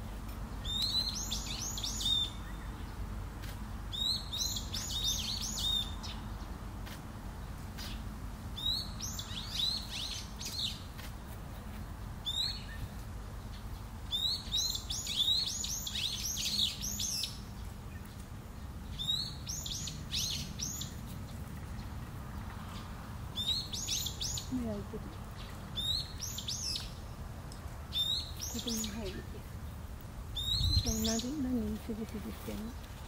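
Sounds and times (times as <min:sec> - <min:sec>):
small bird chirping: 0:00.5 - 0:03.0, 0:03.9 - 0:06.4, 0:08.6 - 0:10.9, 0:12.2 - 0:18.2, 0:18.8 - 0:22.0, 0:22.6 - 0:27.2, 0:27.9 - 0:29.4, 0:30.4 - 0:32.9.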